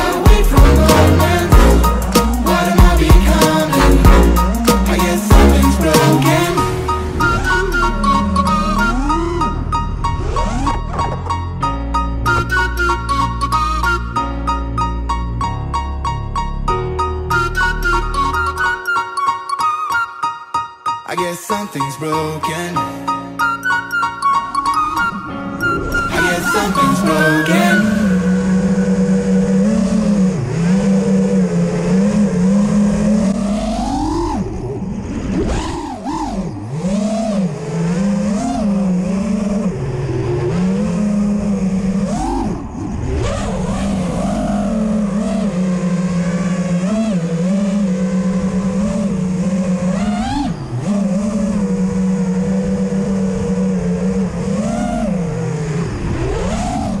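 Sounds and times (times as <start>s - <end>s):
drone motors buzzing: 0.0s - 14.3s, 24.0s - 57.0s.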